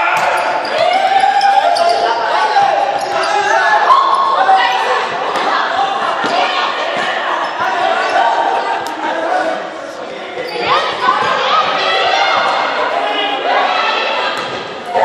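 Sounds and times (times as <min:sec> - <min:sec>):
young people shouting: 0:00.0 - 0:09.8, 0:10.4 - 0:15.0.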